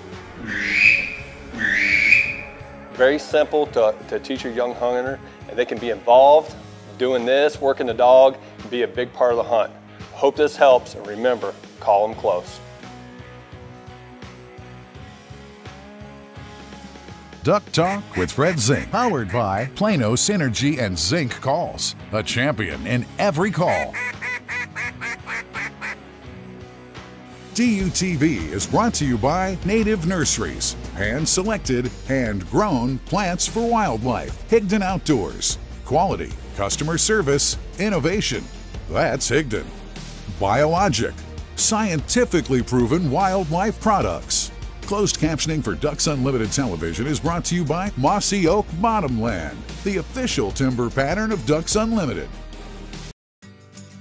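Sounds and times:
background music: 0:00.0 - 0:54.0
duck call whistle: 0:00.4 - 0:02.7, 0:17.8 - 0:19.7, 0:23.7 - 0:26.0.

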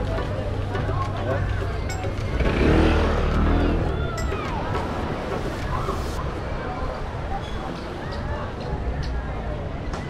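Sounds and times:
motor scooter passing: 0:02.4 - 0:05.2.

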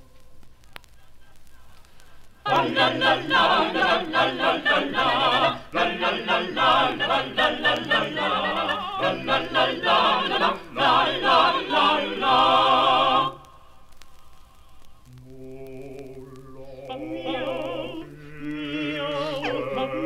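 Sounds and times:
voices singing unaccompanied: 0:02.4 - 0:13.6, 0:15.1 - 0:20.0.

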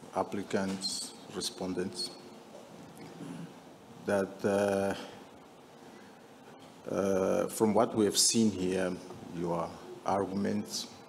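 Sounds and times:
man speaking: 0:00.0 - 0:02.2, 0:04.0 - 0:05.3, 0:06.8 - 0:11.0.

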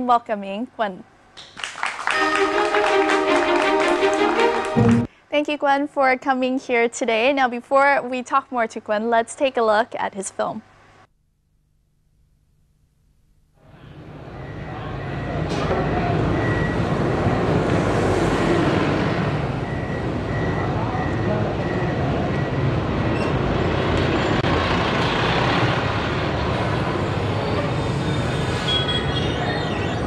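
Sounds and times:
passing vehicles rumbling: 0:13.7 - 0:30.0.

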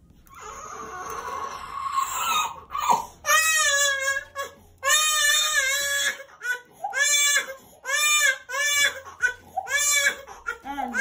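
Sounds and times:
toddler crying and wailing: 0:00.3 - 0:11.0.

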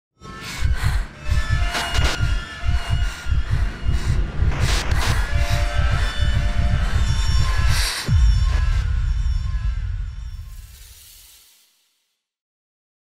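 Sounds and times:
deep low pulse: 0:00.4 - 0:11.4.

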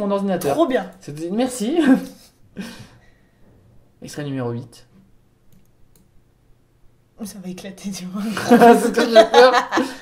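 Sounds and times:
faint computer clicks: 0:05.5 - 0:06.1.

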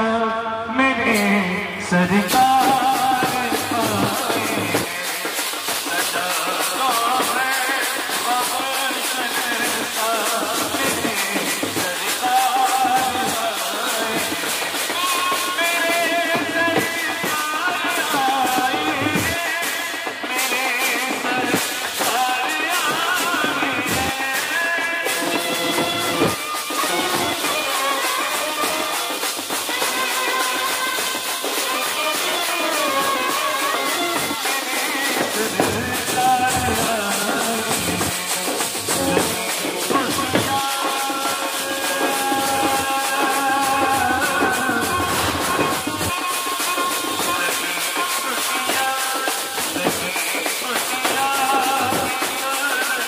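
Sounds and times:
marching drums: 0:01.0 - 0:53.0.

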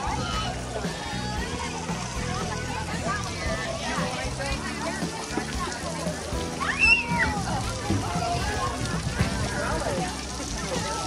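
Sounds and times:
children shouting and chattering: 0:00.0 - 0:11.0
water jets spraying: 0:00.0 - 0:11.0.

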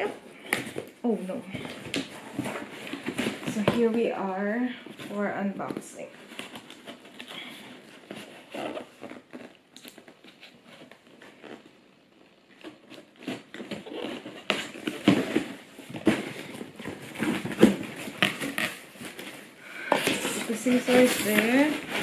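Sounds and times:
cardboard flaps being handled: 0:12.6 - 0:22.0.

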